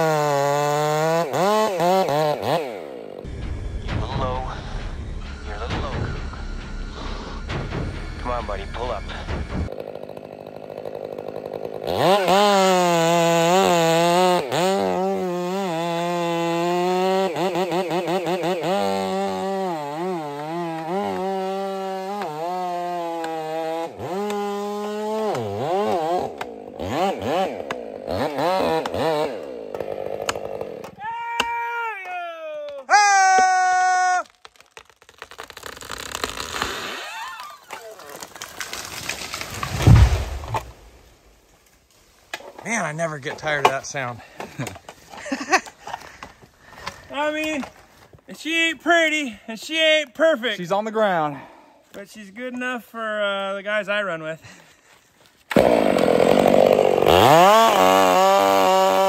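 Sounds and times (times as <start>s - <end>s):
chainsaw cutting wood: 0.0s - 3.4s, 9.2s - 31.0s, 34.1s - 42.6s, 55.4s - 59.0s.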